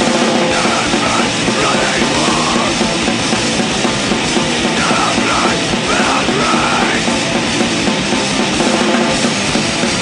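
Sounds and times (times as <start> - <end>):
distorted guitar and bass: 0.0 - 10.0
drums: 0.0 - 10.0
shouted vocals: 0.5 - 2.8, 4.8 - 7.1.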